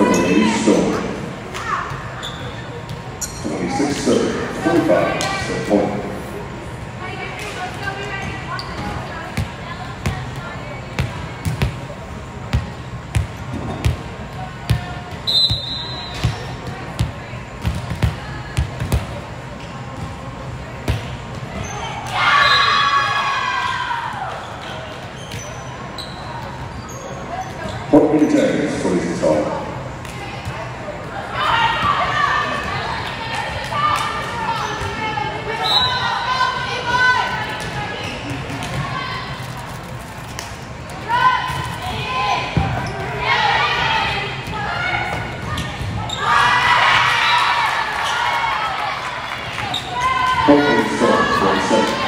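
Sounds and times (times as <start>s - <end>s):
players shouting and cheering: 0.0s - 2.1s, 21.6s - 24.6s, 30.2s - 39.4s, 41.0s - 52.0s.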